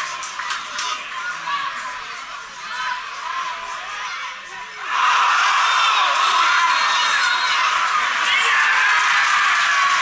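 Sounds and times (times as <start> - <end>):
crowd shouts: 0.0 - 10.0
crowd cheering: 4.8 - 10.0.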